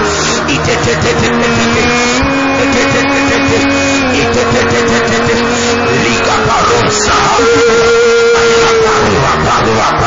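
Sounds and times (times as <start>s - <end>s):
congregation praying aloud: 0.0s - 10.0s
loud church worship music: 0.0s - 10.0s.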